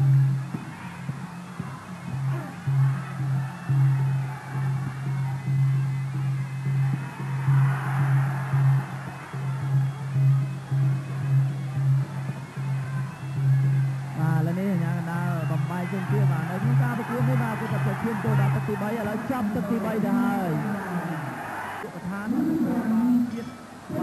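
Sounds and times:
drum beating steady pulses: 0.0 - 21.6
traditional ring music: 0.0 - 24.0.

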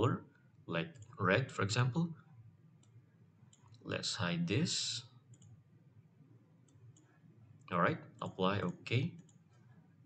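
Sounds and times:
computer mouse clicks: 2.8 - 3.8, 5.3 - 5.6, 6.6 - 7.2, 8.2 - 9.8.

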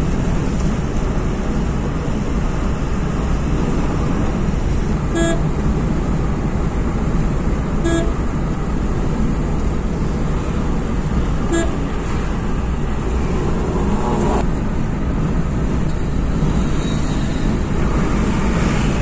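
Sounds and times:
car cabin road noise: 0.0 - 19.0
car horn beep: 5.1 - 5.5, 7.8 - 8.3, 11.4 - 12.0.

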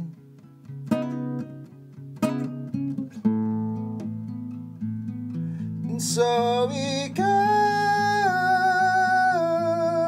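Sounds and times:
nylon-string guitar plucked chords: 0.0 - 10.0.

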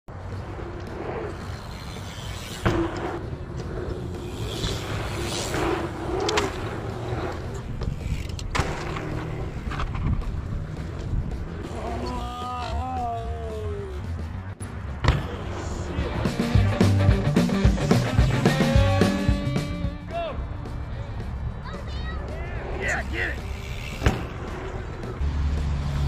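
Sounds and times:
bikes rolling over packed dirt: 0.1 - 16.7, 22.3 - 26.0.

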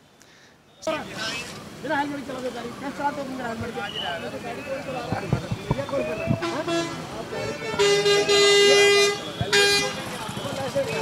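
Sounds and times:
street noise: 0.0 - 11.0
voices: 0.7 - 11.0
vehicle horn honking: 6.4 - 11.0.

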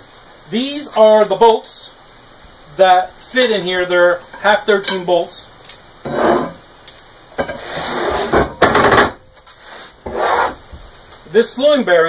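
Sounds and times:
steel parts scraping on wood: 5.7 - 8.5.

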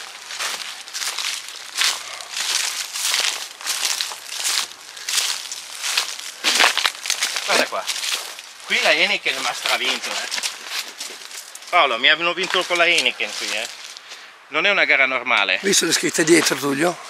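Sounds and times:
footsteps crunching through dry leaves: 0.0 - 14.3.

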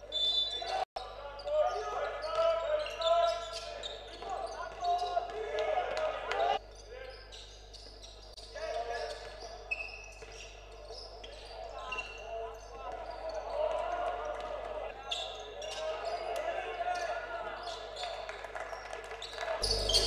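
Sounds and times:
shouts and voices in a hall: 0.0 - 20.0.

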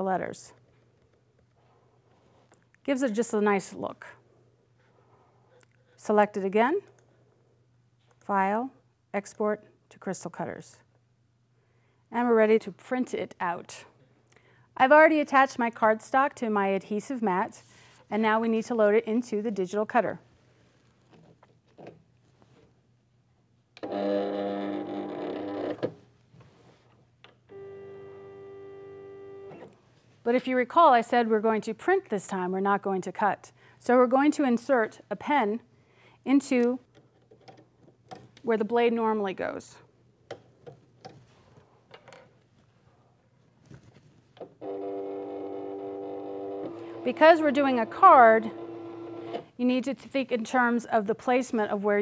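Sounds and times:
craft cutter motors whining: 44.6 - 49.4.

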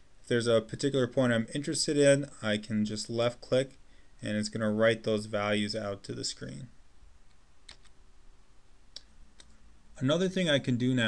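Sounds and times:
low room hiss: 0.0 - 11.0
computer mouse clicks: 7.3 - 8.0, 8.9 - 9.6.

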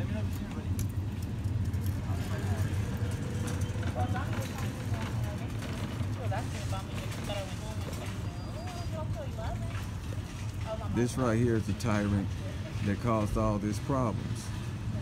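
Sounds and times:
distant talking: 0.0 - 15.0
low urban hum: 0.0 - 15.0.

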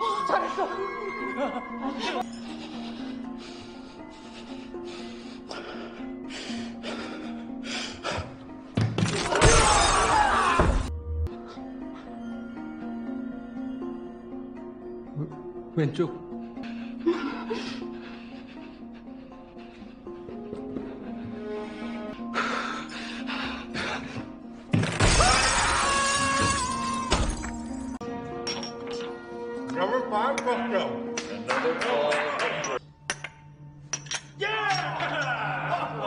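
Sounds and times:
music: 0.0 - 36.0
glass shattering: 9.0 - 10.8, 24.7 - 28.8.

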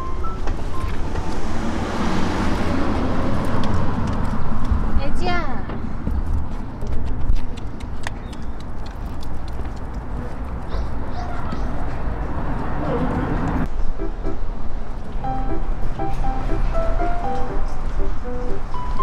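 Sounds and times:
road traffic: 0.0 - 19.0.

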